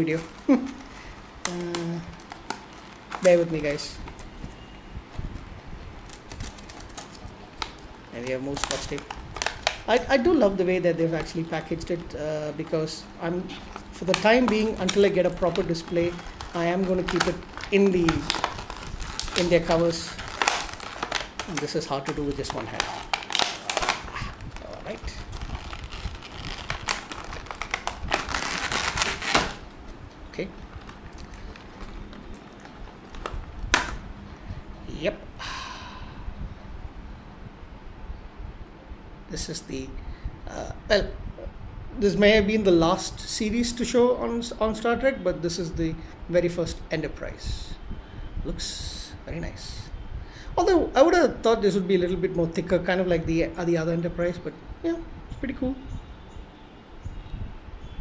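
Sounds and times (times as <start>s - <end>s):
plastic packaging clicking and crackling: 0.0s - 4.4s, 6.0s - 10.3s, 11.1s - 34.0s.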